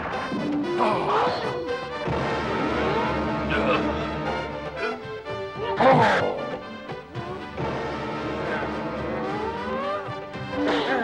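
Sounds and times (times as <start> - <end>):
dramatic background music: 0.0 - 11.0.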